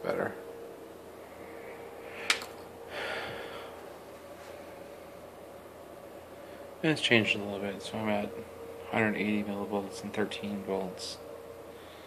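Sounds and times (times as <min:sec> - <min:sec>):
faint steady hum: 0:00.0 - 0:12.0
man breathy exhale: 0:02.1 - 0:03.8.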